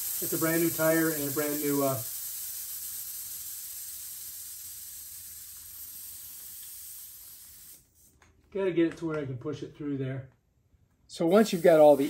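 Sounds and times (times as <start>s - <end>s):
air hissing out of inner tube: 0.0s - 8.2s, 11.2s - 12.0s.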